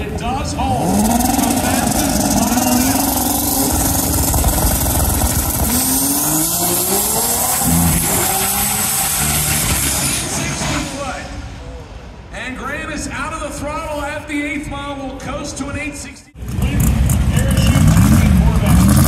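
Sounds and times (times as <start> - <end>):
race car engine accelerating: 0.0 - 11.0, 16.4 - 19.0.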